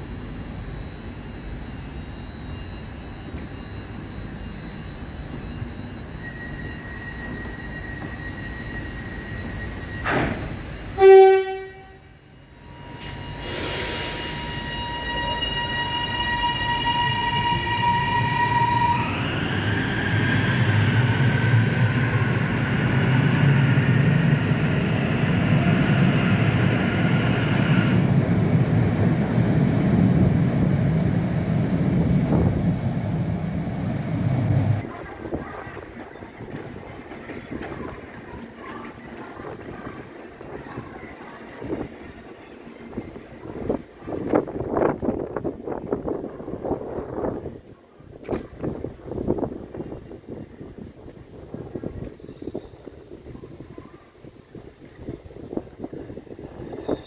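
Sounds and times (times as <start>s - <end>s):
train horn toot: 11.0s - 19.0s
train wheels rumbling: 12.8s - 57.0s.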